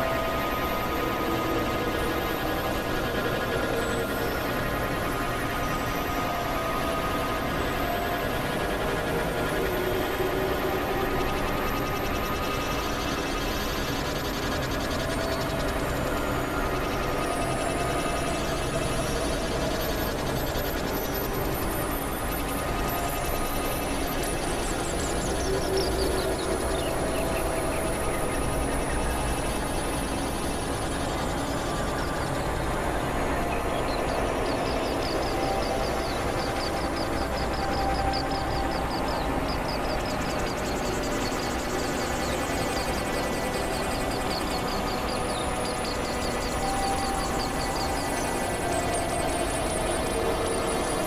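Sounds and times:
droning experimental electronic music: 0:00.0 - 0:51.0.

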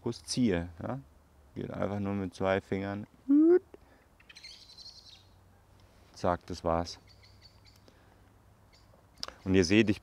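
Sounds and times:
high-pitched bird call: 0:04.2 - 0:05.3.

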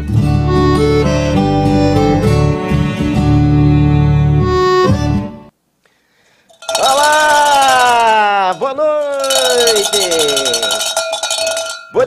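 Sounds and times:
cowbell shaken rapidly: 0:06.5 - 0:12.0.

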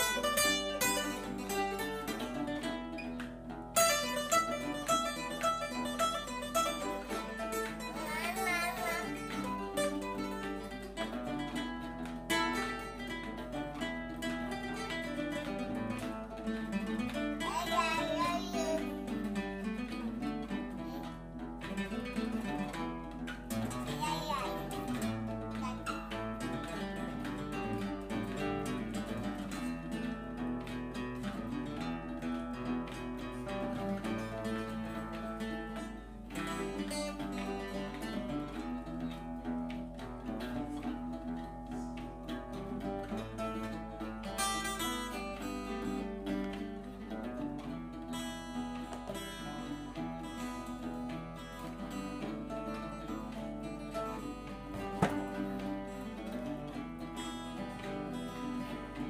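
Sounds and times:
acoustic guitars playing: 0:00.0 - 0:59.0.

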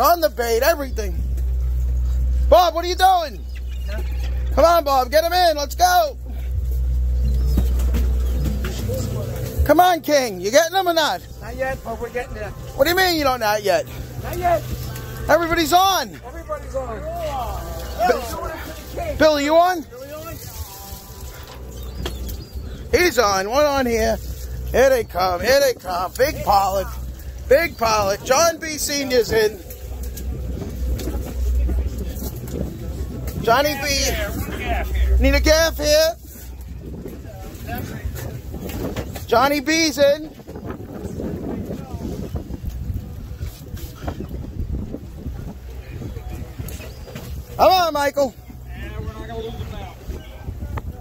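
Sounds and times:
water washing: 0:00.0 - 0:50.6
steady low rumble: 0:00.0 - 0:51.0
wind buffeting microphone: 0:00.0 - 0:51.0.

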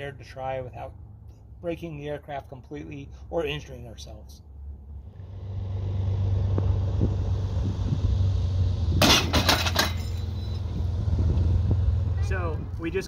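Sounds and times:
low hum of test rig: 0:00.0 - 0:13.0
sharp metallic clanks: 0:09.0 - 0:10.7.

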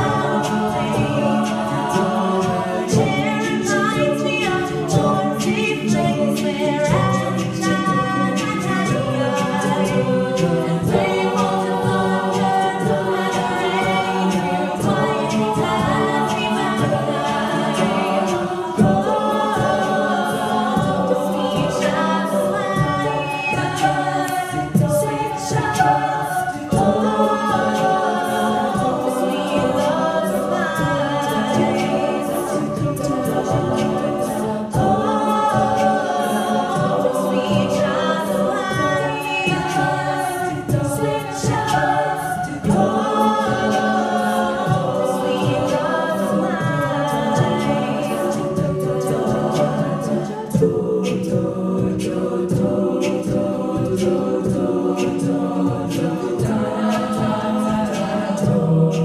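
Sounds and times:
steady percussive beat: 0:00.0 - 0:59.0
women singing a cappella harmony: 0:00.0 - 0:59.0.

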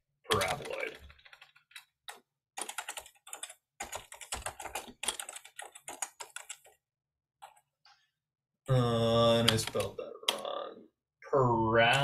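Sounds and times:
typing on computer keyboard: 0:00.3 - 0:06.8, 0:09.4 - 0:10.5.

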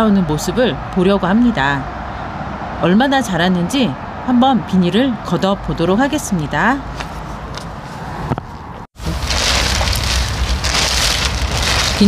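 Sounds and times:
plastic sheet rustling and crackling: 0:09.0 - 0:12.0.

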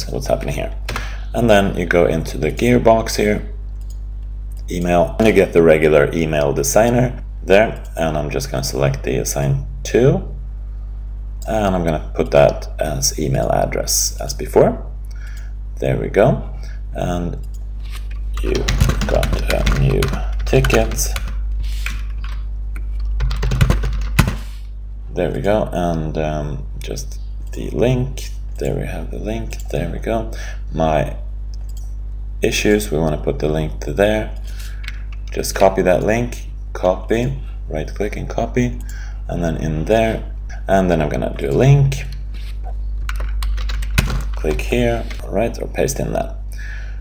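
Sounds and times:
steady low hum: 0:00.0 - 0:47.0
computer keyboard typing: 0:18.4 - 0:24.4, 0:43.1 - 0:45.2.

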